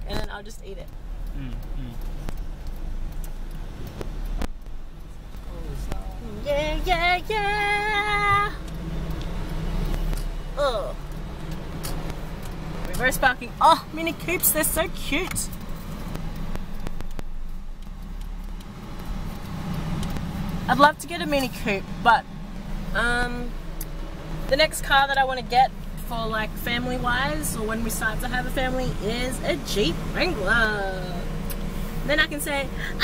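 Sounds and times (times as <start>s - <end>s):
car engine and road rumble: 0.0s - 33.0s
sharp clicks: 0.1s - 22.8s.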